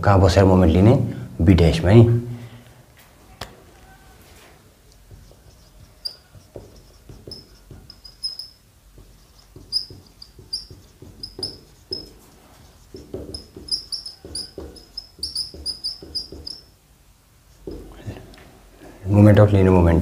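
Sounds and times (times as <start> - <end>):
marker squeaking on whiteboard: 3.9 - 16.8, 17.4 - 18.0.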